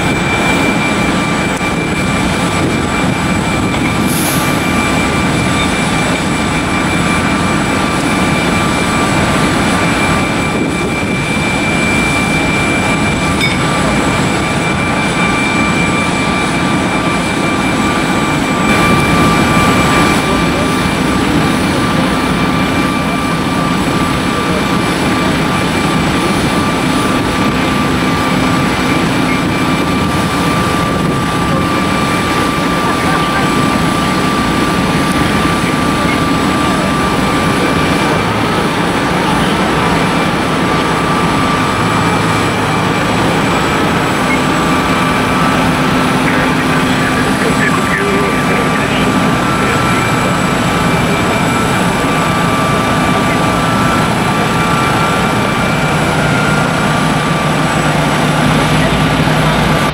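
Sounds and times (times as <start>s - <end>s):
jet turbine rumble and whine: 0.0s - 59.9s.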